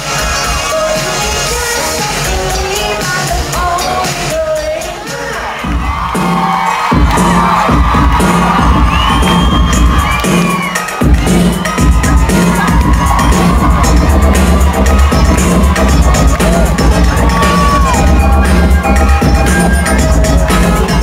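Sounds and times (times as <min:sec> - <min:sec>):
crowd cheering and screaming: 0:00.0 - 0:21.0
heavy pulsing bass beat: 0:05.6 - 0:21.0.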